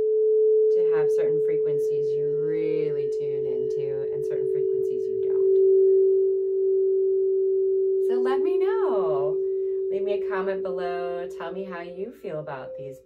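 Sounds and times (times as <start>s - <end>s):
crystal singing bowl ringing: 3.6s - 13.0s.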